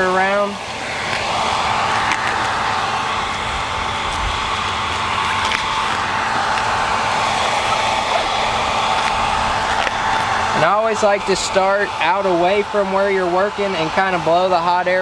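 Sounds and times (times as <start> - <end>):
blow dryer running: 0.0 - 15.0.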